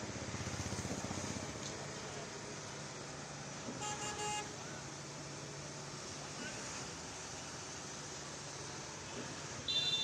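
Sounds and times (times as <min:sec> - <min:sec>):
engine hum and road noise: 0:00.0 - 0:10.0
vehicle horn double toot: 0:03.8 - 0:04.5, 0:09.7 - 0:10.0.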